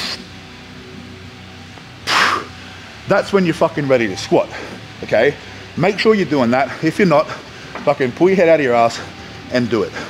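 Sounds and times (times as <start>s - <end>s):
man's forceful breath hiss: 2.0s - 2.6s.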